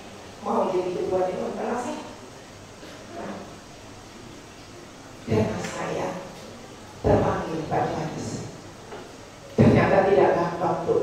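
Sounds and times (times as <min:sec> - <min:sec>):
woman speaking into a microphone: 0:00.4 - 0:02.2, 0:05.3 - 0:06.4, 0:07.0 - 0:08.6, 0:09.6 - 0:11.0.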